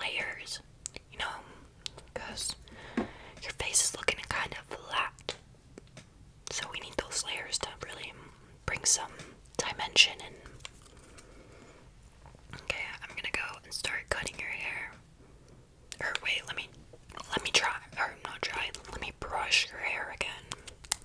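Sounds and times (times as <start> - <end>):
woman whispering: 0.0 - 2.6, 3.4 - 5.4, 6.5 - 10.6, 12.6 - 15.0, 16.0 - 20.6.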